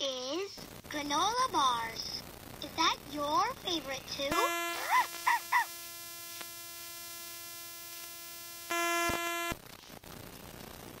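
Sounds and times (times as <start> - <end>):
toy speaker electronic tone: 4.3 - 5.9, 8.7 - 9.5.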